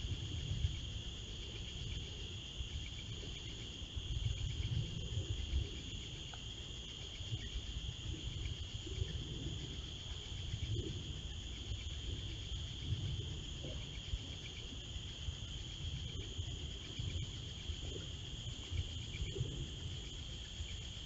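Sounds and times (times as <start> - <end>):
crickets trilling: 0.0 - 21.0.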